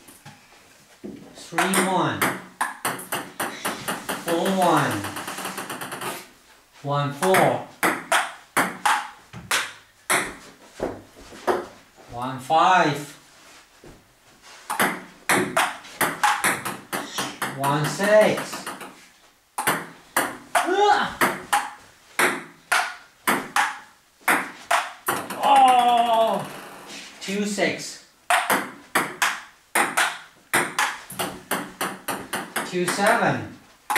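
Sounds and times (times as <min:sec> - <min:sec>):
table tennis ball bouncing: 0:01.6 - 0:06.1, 0:07.2 - 0:11.7, 0:14.7 - 0:19.0, 0:19.6 - 0:26.3, 0:28.3 - 0:33.2
table tennis ball clicking: 0:07.9 - 0:09.7
person calling out: 0:20.6 - 0:21.3, 0:25.3 - 0:26.6.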